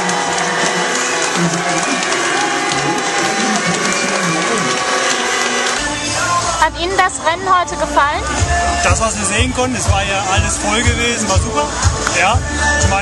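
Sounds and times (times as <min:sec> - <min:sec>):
crowd clapping: 0:00.0 - 0:06.0
crowd cheering and shouting: 0:00.0 - 0:06.6.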